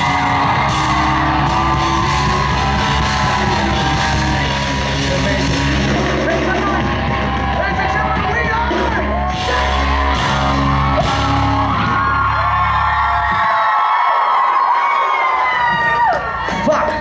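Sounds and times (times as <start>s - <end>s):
live rock band: 0.0s - 13.9s
crowd yelling and whooping: 0.0s - 17.0s.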